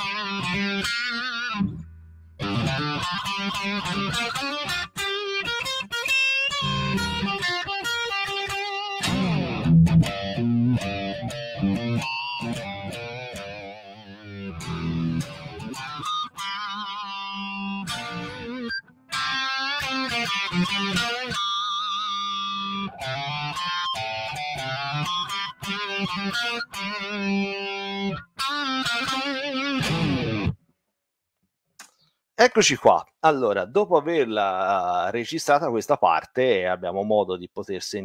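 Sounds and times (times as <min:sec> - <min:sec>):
electric guitar blues lead: 0:00.0 - 0:30.6.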